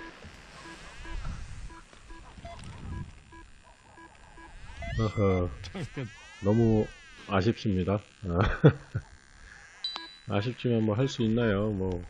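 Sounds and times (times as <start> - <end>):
short soft electronic beeps: 9.8 - 10.4.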